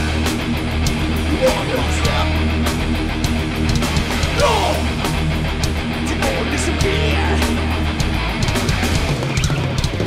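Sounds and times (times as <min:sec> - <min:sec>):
distorted electric guitars: 0:00.0 - 0:10.0
rapid drum and cymbal hits: 0:00.0 - 0:10.0.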